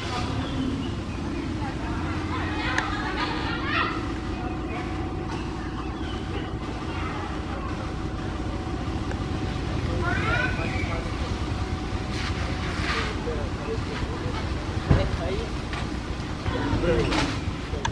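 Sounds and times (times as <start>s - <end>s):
faint distant voices: 0.0s - 17.9s
low background rumble: 0.0s - 17.9s.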